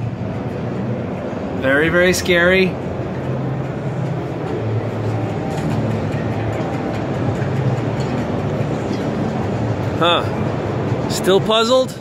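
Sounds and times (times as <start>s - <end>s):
busy hall din: 0.0s - 12.0s
faint music: 0.0s - 12.0s.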